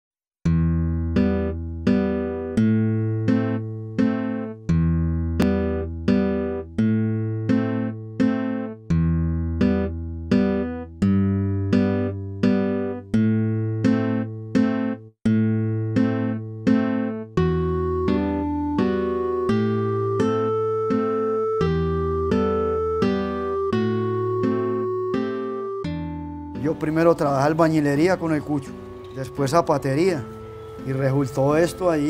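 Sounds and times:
plucked guitar notes: 0.4 - 32.0.

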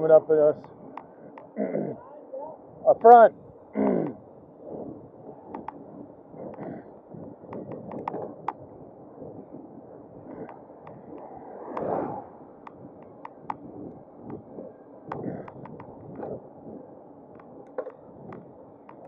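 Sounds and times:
wind noise: 0.0 - 19.0
sharp ticks and rattles: 7.4 - 8.6, 15.1 - 16.4
car passing: 10.2 - 15.4.

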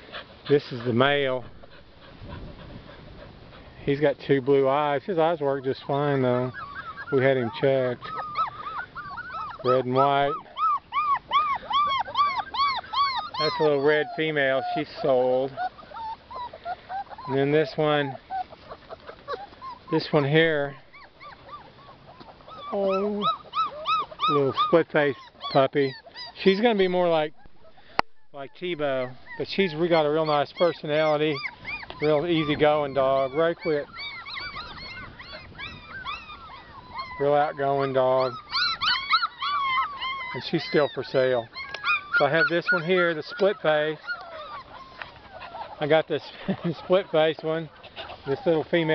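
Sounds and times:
puppy whining: 0.0 - 48.9.

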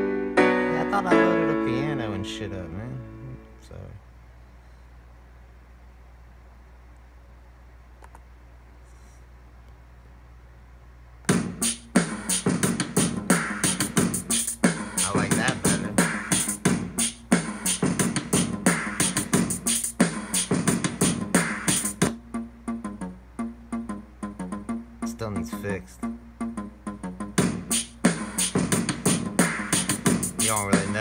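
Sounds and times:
drum machine beat: 11.3 - 31.0.

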